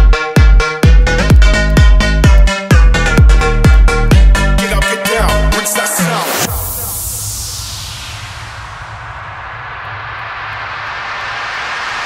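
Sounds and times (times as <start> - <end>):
low bass drone: 0.0 - 5.6
white-noise sweep: 6.1 - 12.0.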